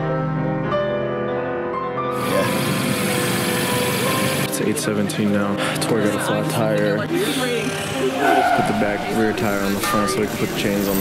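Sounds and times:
soft piano music: 0.0 - 7.1
air hissing from leaking tyre: 2.2 - 4.5.

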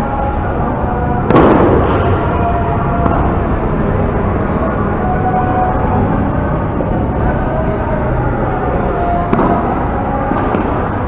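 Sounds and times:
loud steady din: 0.0 - 11.0.

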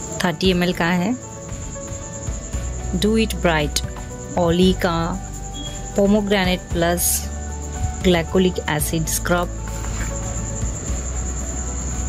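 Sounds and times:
crickets chirping: 0.0 - 12.0
faint background music: 0.0 - 12.0.

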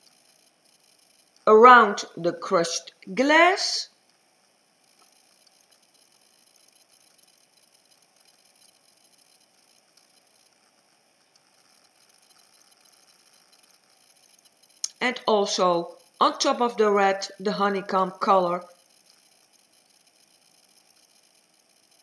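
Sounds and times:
faint room hiss: 0.0 - 22.0.

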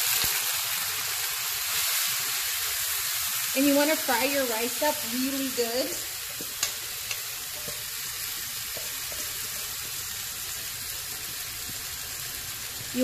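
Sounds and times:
rice sizzling in oil: 0.0 - 13.0.

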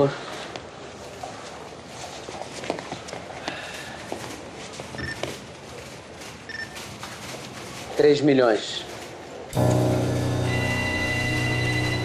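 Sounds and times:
knocks and shuffling: 0.0 - 12.0.

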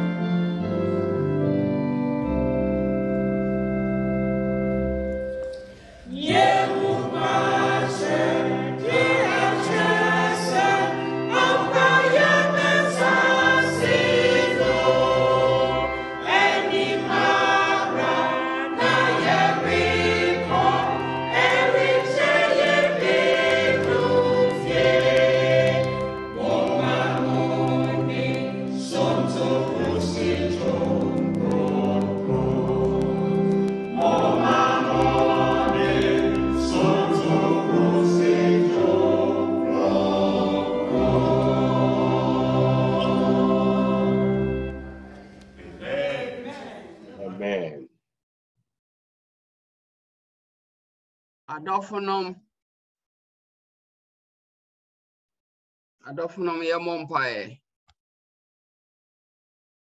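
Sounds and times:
mixed choir singing a hymn: 5.8 - 47.4.

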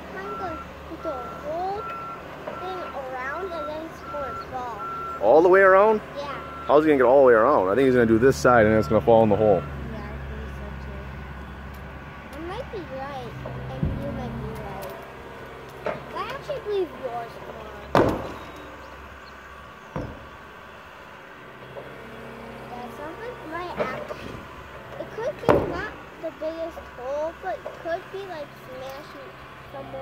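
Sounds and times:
excavator engine running: 0.0 - 30.0.

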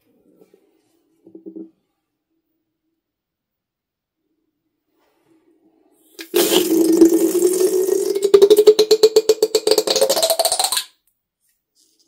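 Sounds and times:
balloon neck buzzing: 6.2 - 10.9.

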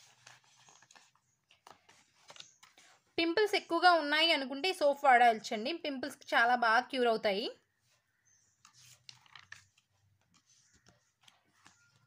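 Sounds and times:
paper clicks: 0.0 - 2.8, 8.6 - 12.0
paper page turning: 0.0 - 3.0, 8.6 - 12.0.

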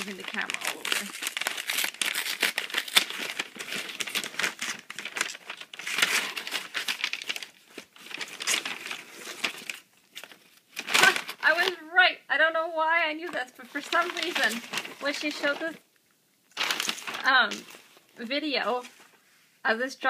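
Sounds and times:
woman's voice: 0.0 - 1.2, 11.0 - 15.8, 17.2 - 19.0, 19.6 - 20.0
paper crinkling and tearing: 0.0 - 11.8, 13.6 - 15.8, 16.5 - 19.0.

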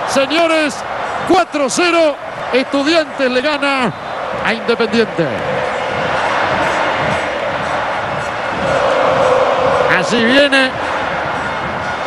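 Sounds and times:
stadium crowd singing and chanting: 0.0 - 12.0.

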